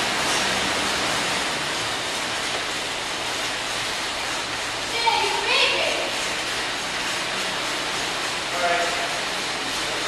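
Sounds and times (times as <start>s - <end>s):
air bike fan whooshing: 0.0s - 10.0s.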